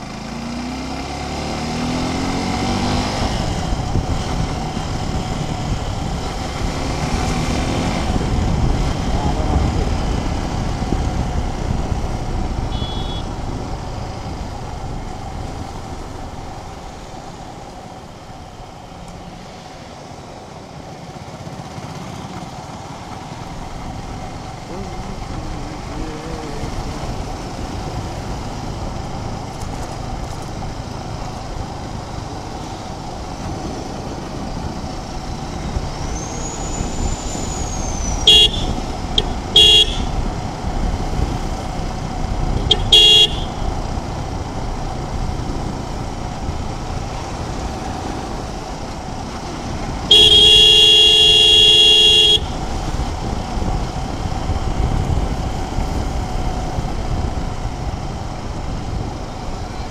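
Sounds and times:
motorcycle engine running: 0.0s - 59.9s
wind noise: 1.8s - 16.7s, 33.0s - 59.9s
motorcycle horn honking: 12.6s - 13.4s, 38.2s - 40.3s, 42.6s - 43.7s, 50.1s - 52.6s.

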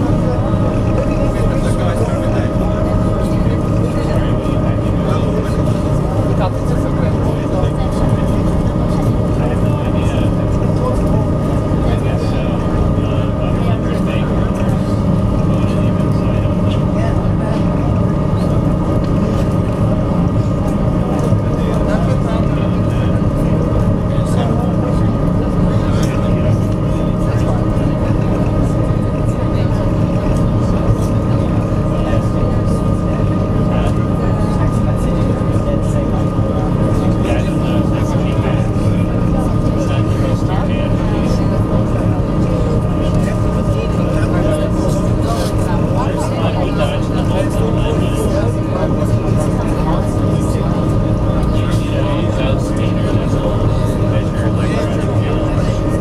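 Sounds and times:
ferry engines droning: 0.0s - 56.0s
thin steady whine: 0.0s - 56.0s.

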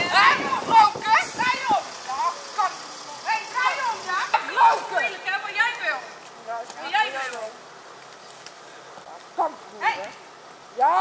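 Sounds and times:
woman shouting and crying out: 0.0s - 2.4s.

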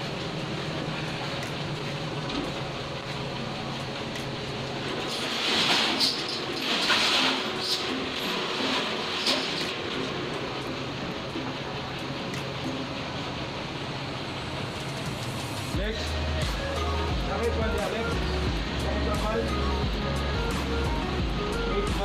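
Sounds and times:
vehicle engine running: 0.0s - 22.0s.

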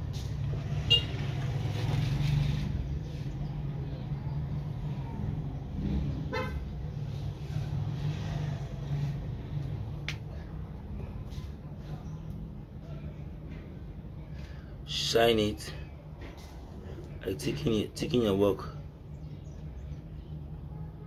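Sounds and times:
short horn toot: 0.8s - 1.2s.

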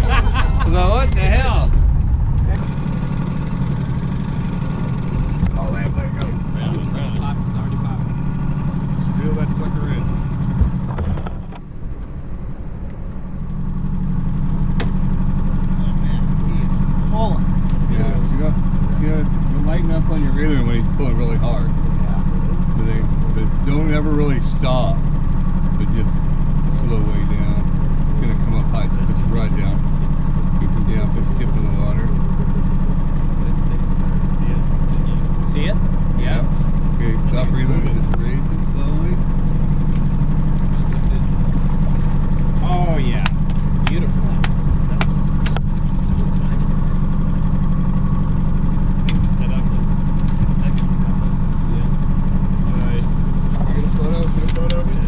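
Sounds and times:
outboard motor humming: 0.0s - 55.0s.

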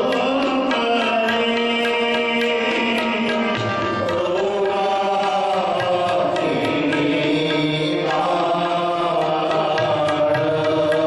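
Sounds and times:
harmonium notes: 0.0s - 11.0s
men singing a devotional hymn: 0.0s - 11.0s.

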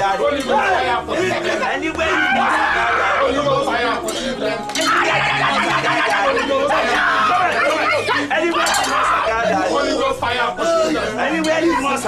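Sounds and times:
group shouting prayer chant: 0.0s - 12.0s.

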